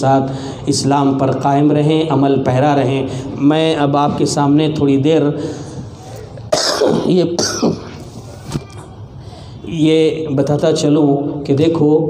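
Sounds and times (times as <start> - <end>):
man coughing and clearing throat: 6.2 - 9.0.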